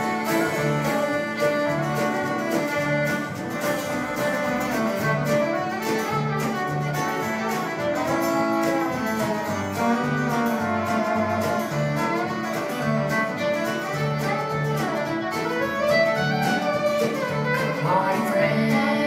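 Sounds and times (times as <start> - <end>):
drum kit: 0.0 - 19.0
fiddle melody: 0.0 - 19.0
strummed acoustic guitar: 0.0 - 19.0
upright bass: 0.0 - 19.0.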